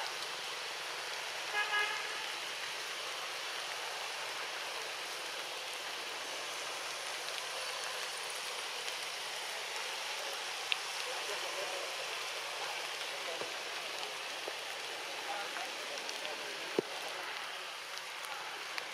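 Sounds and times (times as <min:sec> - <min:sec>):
outdoor background hiss: 0:00.0 - 0:18.9
distant horn tooting: 0:01.5 - 0:02.2.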